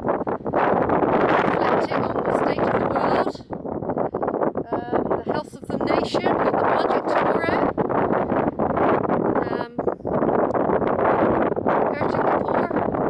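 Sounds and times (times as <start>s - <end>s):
strong wind buffeting microphone: 0.0s - 13.0s
woman's voice: 1.3s - 3.5s, 4.6s - 7.8s, 9.4s - 9.9s, 11.9s - 12.9s.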